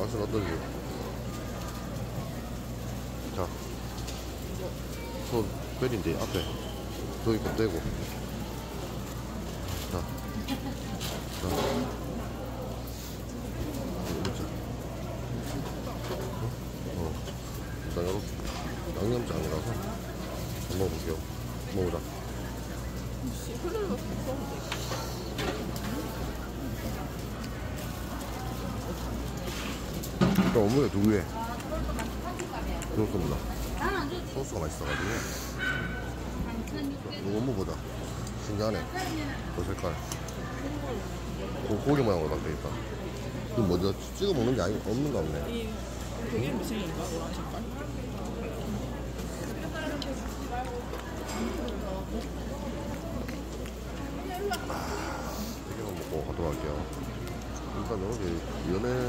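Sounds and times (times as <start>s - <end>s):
busy market background: 0.0s - 59.0s.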